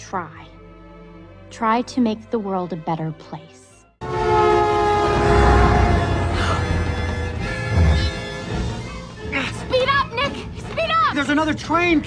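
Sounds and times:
locomotive horn: 4.0 - 8.9
locomotive engine rumbling: 4.0 - 9.0.

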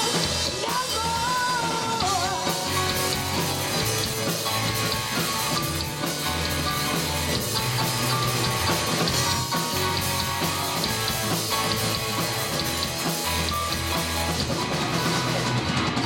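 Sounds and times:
rock band playing live: 0.0 - 16.0.

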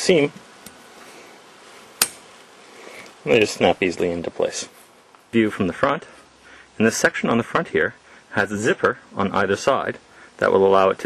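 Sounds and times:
faint background hiss: 0.0 - 11.0
tent pole clip snapping: 2.0 - 2.3.

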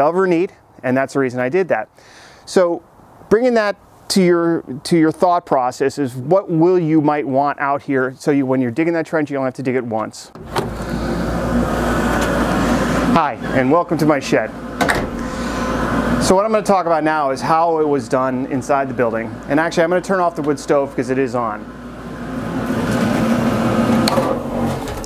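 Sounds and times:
wood boiler draft fan drone: 10.4 - 25.0.

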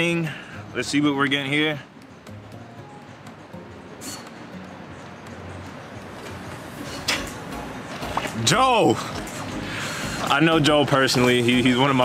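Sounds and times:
quiet music: 0.0 - 12.0.

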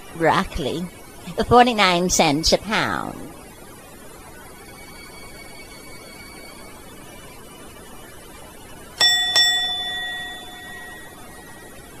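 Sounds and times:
elevator chime dings: 9.0 - 12.0.

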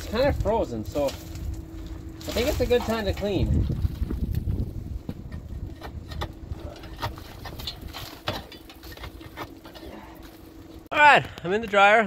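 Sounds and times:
faint steady hum: 0.0 - 12.0
knocks and scrapes on metal: 5.0 - 10.1.

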